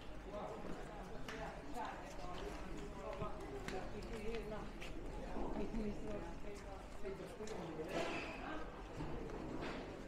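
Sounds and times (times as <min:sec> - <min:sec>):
footsteps clicking on stone floor: 0:00.0 - 0:07.8.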